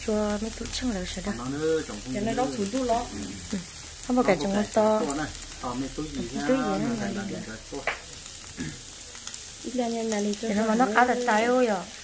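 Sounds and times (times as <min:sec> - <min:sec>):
meat sizzling in a grill pan: 0:00.0 - 0:12.0
people talking at a table: 0:00.0 - 0:12.0.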